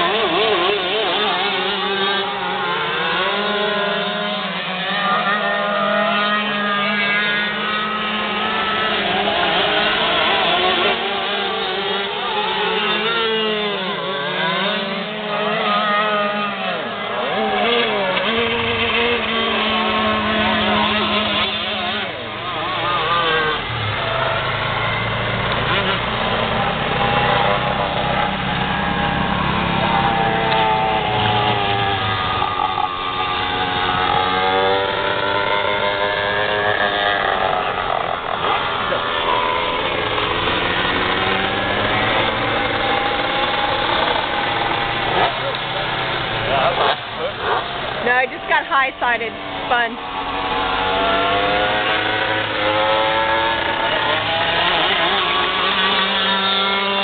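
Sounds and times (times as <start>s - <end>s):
kart engines revving: 0.0s - 57.0s.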